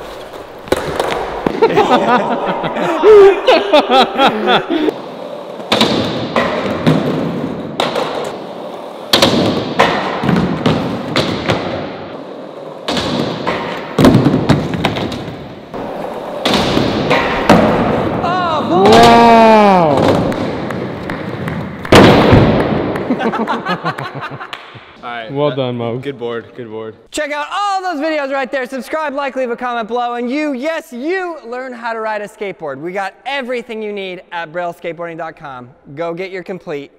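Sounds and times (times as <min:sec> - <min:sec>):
skateboard wheels rolling on concrete: 0:00.0 - 0:03.0, 0:04.4 - 0:24.3
person exclaiming ohh: 0:18.2 - 0:20.1.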